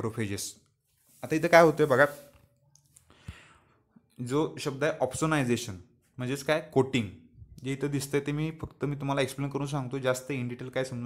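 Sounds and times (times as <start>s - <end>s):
person speaking: 0.0s - 3.0s, 4.2s - 11.0s.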